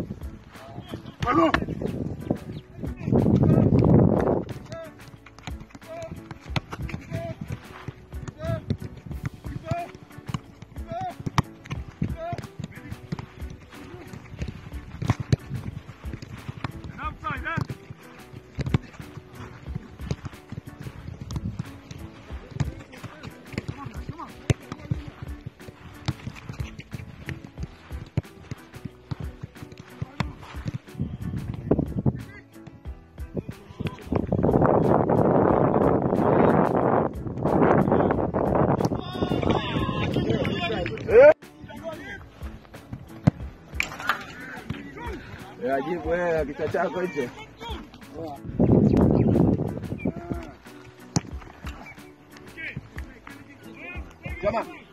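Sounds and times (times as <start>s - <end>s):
footballs being kicked: 0.0s - 54.9s
players' voices calling: 0.2s - 34.9s, 38.8s - 54.9s.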